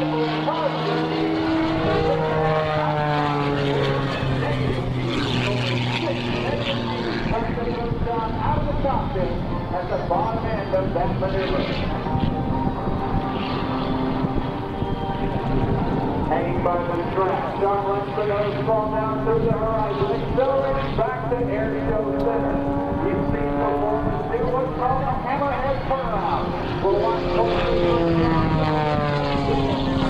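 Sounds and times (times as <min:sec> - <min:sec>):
biplane piston engine and propeller: 0:00.0 - 0:30.0.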